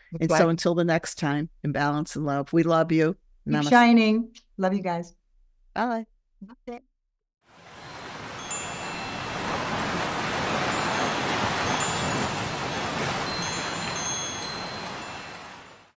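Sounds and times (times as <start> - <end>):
steady rushing wash: 7.5 - 15.9
wind chimes tinkling: 7.7 - 16.0.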